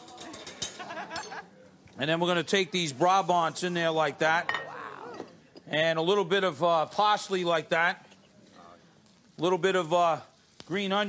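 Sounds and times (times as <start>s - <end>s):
garlic crackling in hot oil: 6.3s - 11.0s.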